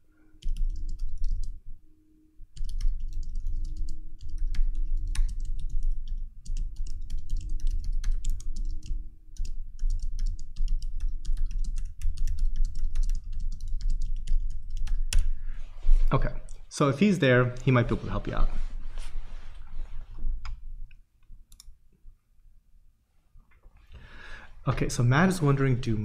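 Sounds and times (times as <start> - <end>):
rapid typing on keyboard: 0.4 - 1.6, 2.6 - 15.2.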